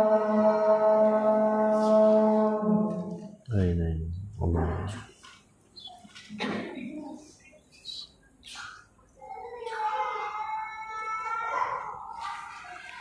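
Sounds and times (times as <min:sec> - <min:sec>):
wavering vocal call: 0:00.0 - 0:05.0.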